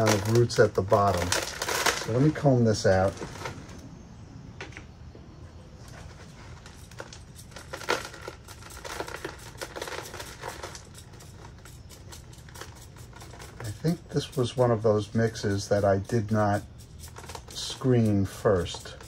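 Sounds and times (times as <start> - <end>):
soil pattering onto plastic tray: 0.0 - 3.6.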